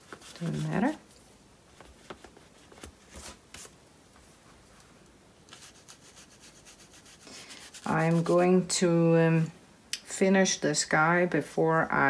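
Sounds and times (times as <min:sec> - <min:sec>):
paintbrush scratching on paper: 0:00.0 - 0:01.0, 0:05.5 - 0:08.5.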